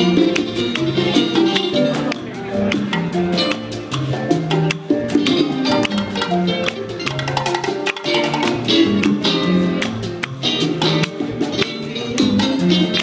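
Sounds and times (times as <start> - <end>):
congas: 0.0 - 13.0
hand percussion: 0.0 - 13.0
tres guitar: 0.0 - 13.0
upright bass: 0.0 - 13.0.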